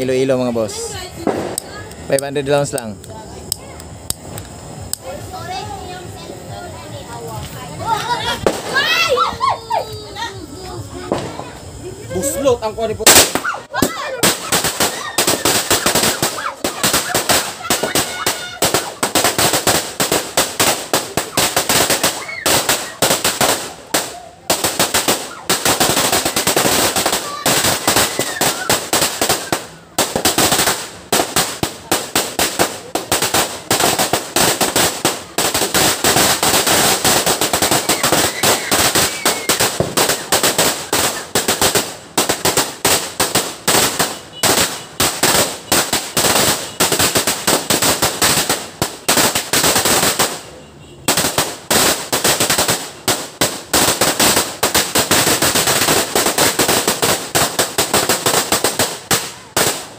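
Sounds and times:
firecracker string bangs: 0:01.2 - 0:02.8, 0:13.0 - 0:50.5.

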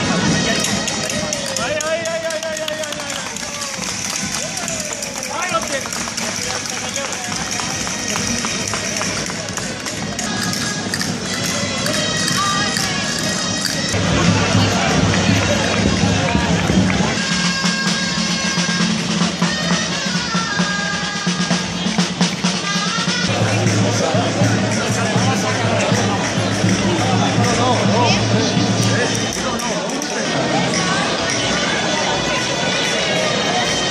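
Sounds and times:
crowd chatter: 0:00.0 - 0:33.9
folk wind music: 0:00.0 - 0:33.9.

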